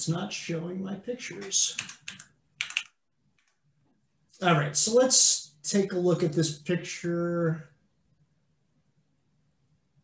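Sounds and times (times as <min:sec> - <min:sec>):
computer keyboard keystrokes: 0:01.3 - 0:03.6.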